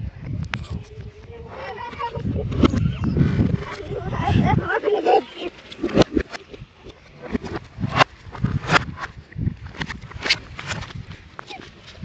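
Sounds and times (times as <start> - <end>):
voice played backwards: 0.6 - 8.0.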